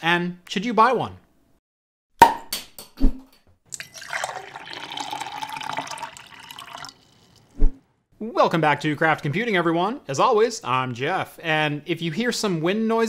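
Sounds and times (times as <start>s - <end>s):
beer pouring into glass: 3.7s - 7.6s.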